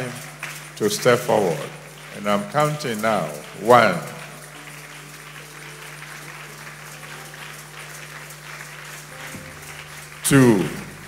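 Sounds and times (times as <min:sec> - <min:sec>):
crowd applauding: 0:00.0 - 0:11.0
soft sustained music: 0:00.0 - 0:11.0.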